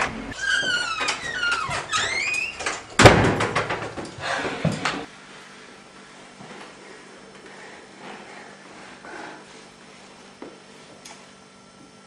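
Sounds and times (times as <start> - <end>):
door hinges squeaking: 0.0 - 3.2
door shutting with bang: 3.0 - 3.9.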